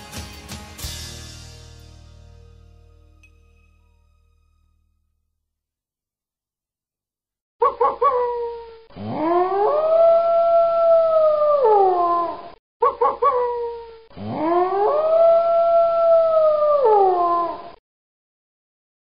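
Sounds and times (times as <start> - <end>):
wolf yipping: 7.6 - 10.2, 11.6 - 15.5
wolf howling: 7.7 - 12.5, 13.2 - 17.8.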